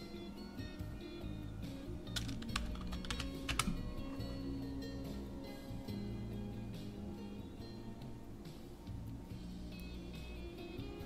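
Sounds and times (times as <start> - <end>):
background music with guitar: 0.0 - 11.0
keyboard typing clicks: 2.2 - 3.9.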